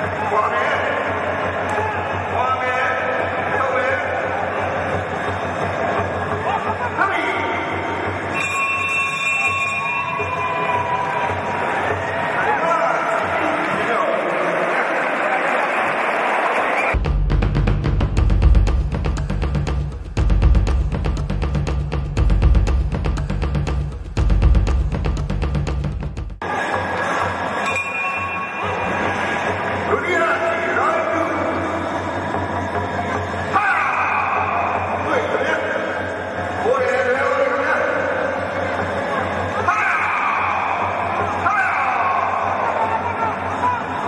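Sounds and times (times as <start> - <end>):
arena crowd noise: 0.0 - 17.0, 26.4 - 44.0.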